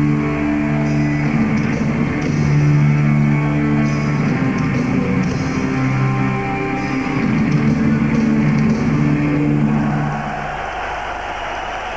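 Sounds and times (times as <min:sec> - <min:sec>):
distorted guitars and bass chord: 0:00.0 - 0:10.2
arena crowd roar: 0:06.5 - 0:11.9.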